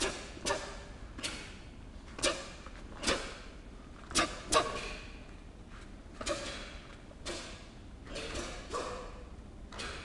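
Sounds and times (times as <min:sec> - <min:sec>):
sharp snaps of martial arts moves: 0:00.0 - 0:05.2, 0:06.1 - 0:09.1.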